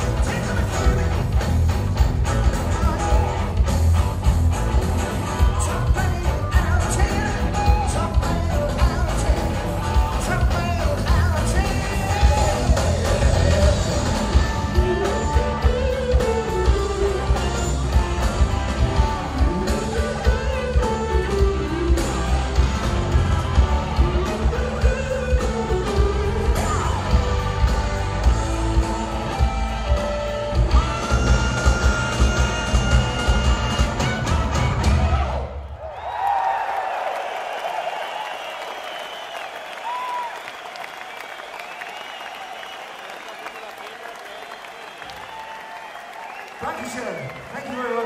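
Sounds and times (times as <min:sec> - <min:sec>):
live rock band playing: 0:00.0 - 0:35.5
crowd applause and cheering: 0:00.0 - 0:48.0.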